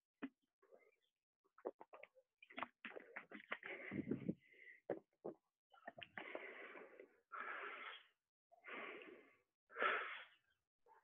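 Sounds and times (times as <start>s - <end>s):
man breathing: 3.5s - 4.9s, 6.2s - 10.4s.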